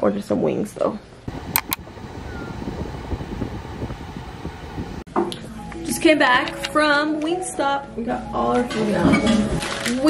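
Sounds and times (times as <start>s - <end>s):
wind buffeting microphone: 1.3s - 5.1s.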